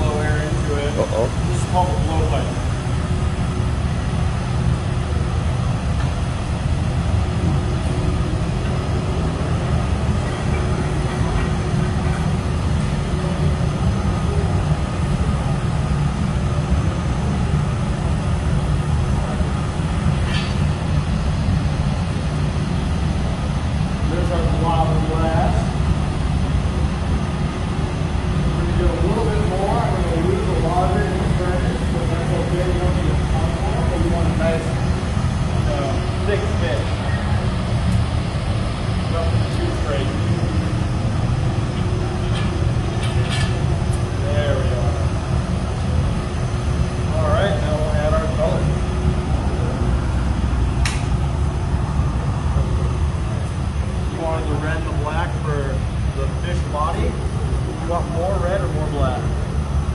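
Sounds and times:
floor fan running: 0:00.0 - 0:59.9
gas furnace roaring: 0:00.0 - 0:59.9.

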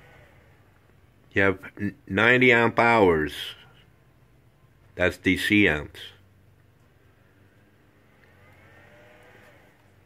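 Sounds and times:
faint low hum: 0:00.0 - 0:10.0
faint rising and falling tone: 0:07.2 - 0:10.0.

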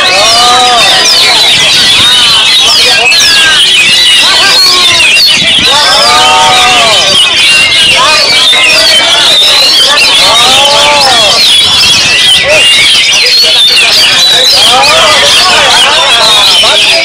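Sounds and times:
people's long drawn-out calls: 0:00.0 - 0:17.0
songbirds chirping and trilling: 0:00.0 - 0:17.0.

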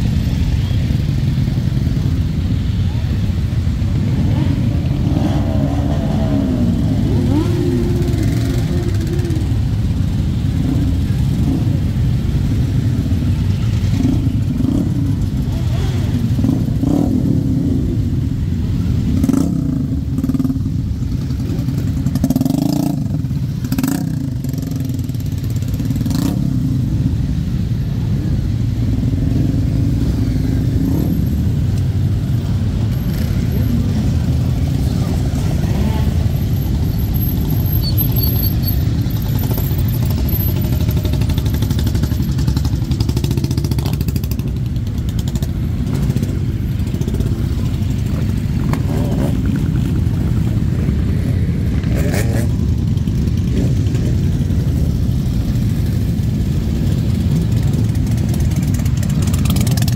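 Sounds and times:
motorcycles revving past: 0:03.9 - 0:12.1, 0:28.9 - 0:59.9.

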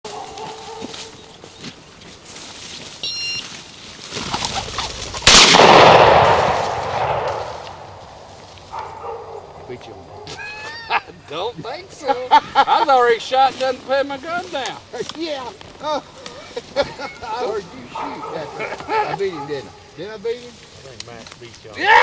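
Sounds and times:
shotgun shot echoing: 0:05.1 - 0:08.4.

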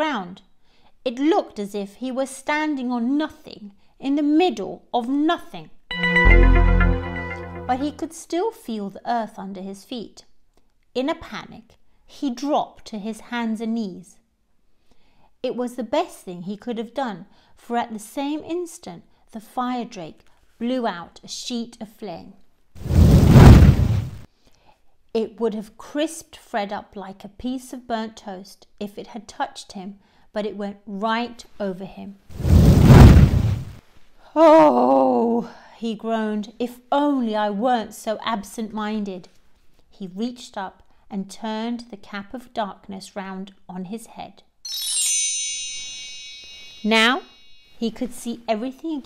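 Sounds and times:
speech: 0:00.0 - 0:00.5, 0:01.1 - 0:05.8, 0:07.8 - 0:10.3, 0:11.0 - 0:14.2, 0:15.4 - 0:22.4, 0:25.1 - 0:32.2, 0:34.3 - 0:44.5, 0:46.9 - 0:49.0
shimmering bell chime: 0:05.9 - 0:08.0, 0:44.7 - 0:47.8
deep rushing fire blast: 0:22.8 - 0:24.2, 0:32.4 - 0:33.8.

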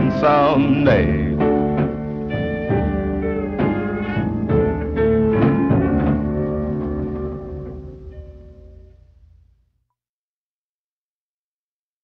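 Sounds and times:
slow blues band playing: 0:00.0 - 0:09.4.

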